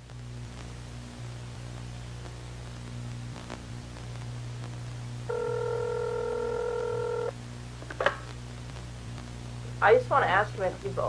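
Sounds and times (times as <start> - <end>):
telephone ringback tone: 5.3 - 7.3.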